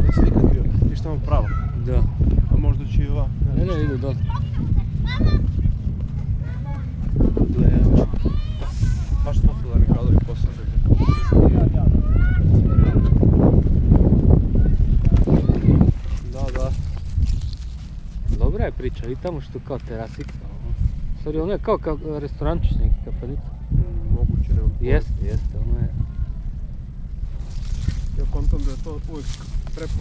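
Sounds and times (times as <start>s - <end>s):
child calling out: 0.0s - 0.5s, 10.9s - 13.2s
wind buffeting microphone: 0.0s - 30.0s.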